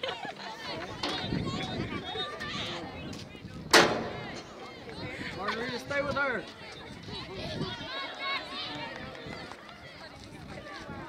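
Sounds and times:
voices shouting on a field: 0:00.0 - 0:11.0.

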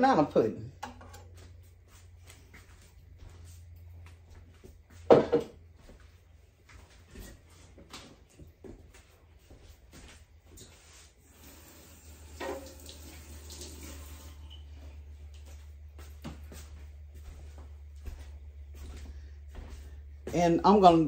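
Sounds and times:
dishes clattering: 0:05.1 - 0:05.5
water running: 0:11.2 - 0:15.6.

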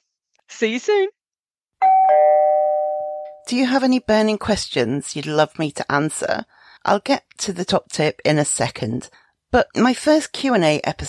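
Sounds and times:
two-note ding-dong chime: 0:01.8 - 0:03.4.

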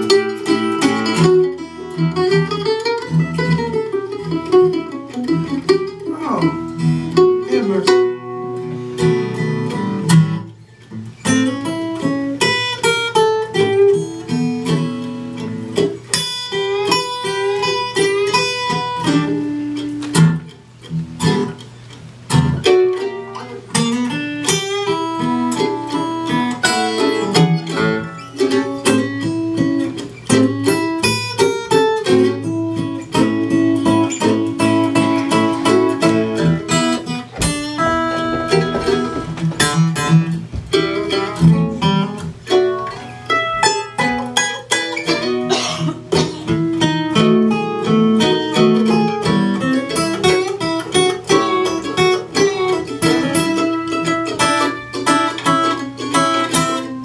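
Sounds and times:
acoustic guitar accompaniment: 0:00.0 - 0:57.0
mandolin plucked notes: 0:00.0 - 0:57.0.

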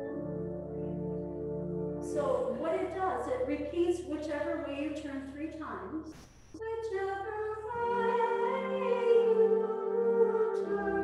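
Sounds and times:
woman singing chant melody: 0:02.0 - 0:06.0, 0:06.6 - 0:11.0.

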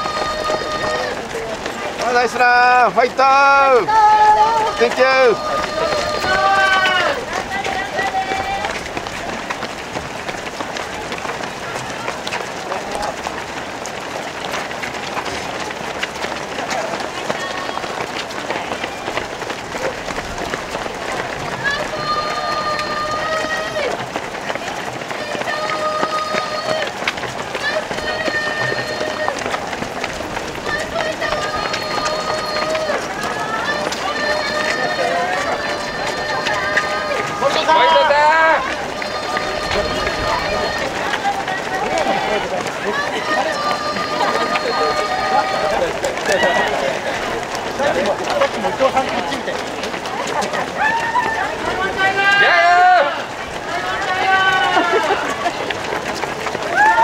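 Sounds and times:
running footfalls on road: 0:00.0 - 0:57.0.

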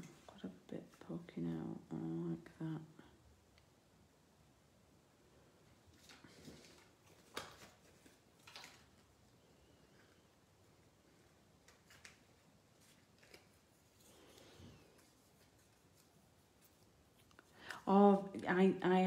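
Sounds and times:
cardstock rustling and tapping: 0:06.0 - 0:09.0.

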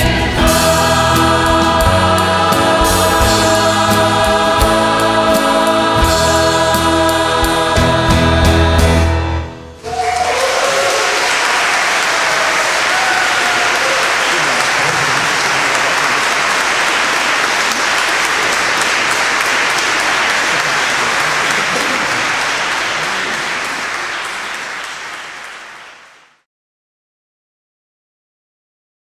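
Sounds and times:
audience applauding: 0:09.8 - 0:26.4.

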